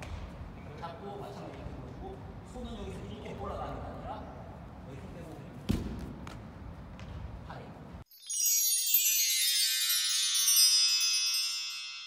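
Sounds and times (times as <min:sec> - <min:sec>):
gym room noise: 0:00.0 - 0:08.0
taps and scuffs on mat: 0:05.6 - 0:07.4.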